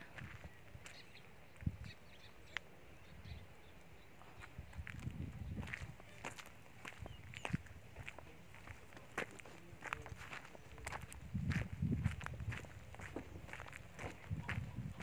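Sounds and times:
footsteps crunching on gravel: 4.2s - 15.0s.

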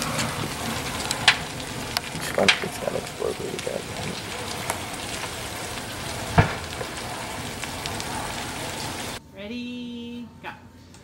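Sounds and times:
fire crackling: 0.0s - 9.2s
loud sharp crack: 0.0s - 9.2s.

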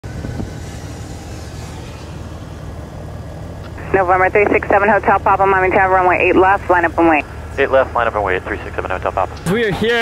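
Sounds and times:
light aircraft engine idling: 0.0s - 10.0s.

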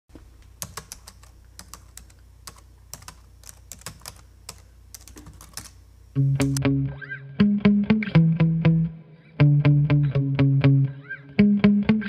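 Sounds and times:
keyboard typing clicks: 0.6s - 5.8s.

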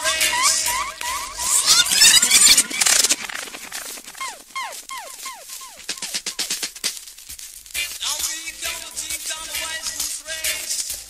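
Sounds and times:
electronic dub siren sweeps: 0.0s - 6.8s
reggae dub music: 0.0s - 11.0s.

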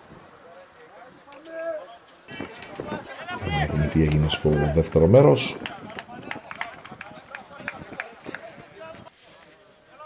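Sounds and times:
distant players shouting: 1.1s - 9.1s.

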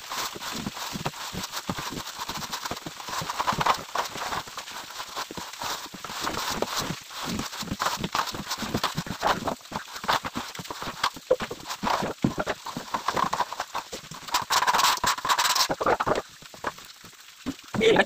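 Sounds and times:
straightedge scraping wet plaster: 1.0s - 16.2s
footsteps on wooden boards: 5.8s - 16.8s.

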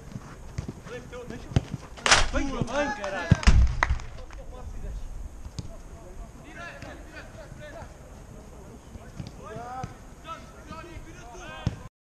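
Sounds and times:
footballers shouting: 2.3s - 3.5s, 6.3s - 11.9s.

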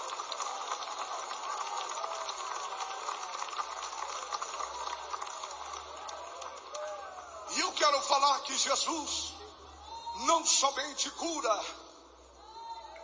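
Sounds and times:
congregation crowd murmur: 0.0s - 11.0s.

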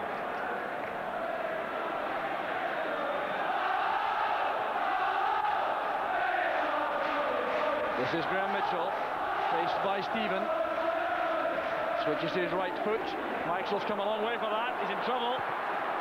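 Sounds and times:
stadium crowd singing and chanting: 0.0s - 16.0s.

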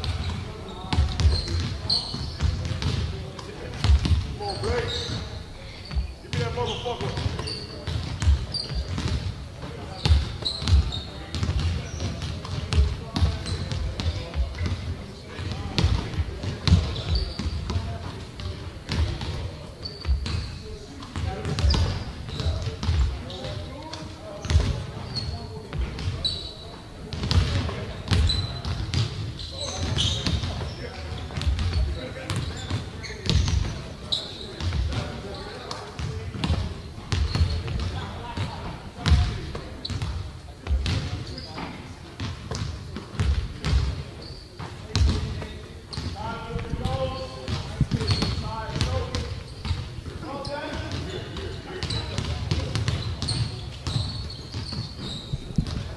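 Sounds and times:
basketballs bouncing on hardwood: 0.0s - 3.1s, 5.9s - 19.4s, 21.2s - 23.6s, 24.4s - 24.9s, 27.1s - 29.2s, 31.3s - 33.7s, 36.0s - 41.2s, 42.2s - 44.0s, 44.9s - 49.9s, 51.8s - 55.9s
sneaker squeaks: 0.0s - 55.9s.

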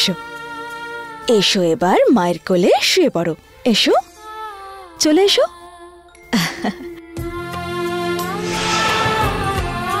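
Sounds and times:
held note of background music: 8.2s - 10.0s.

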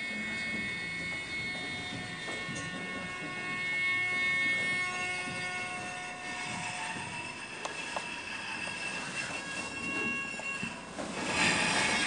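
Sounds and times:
high ringing drone tones: 0.0s - 12.0s.

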